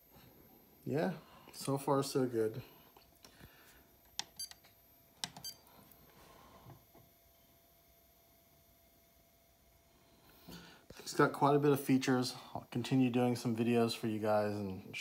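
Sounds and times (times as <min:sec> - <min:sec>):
short electronic beeps: 0:05.4 - 0:05.6.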